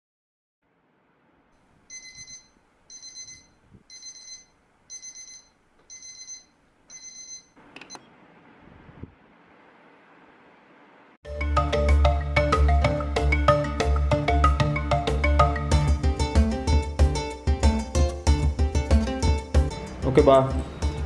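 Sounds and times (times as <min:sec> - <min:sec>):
faint room hiss: 0:00.6 - 0:11.2
alarm clock beeping: 0:01.9 - 0:08.0.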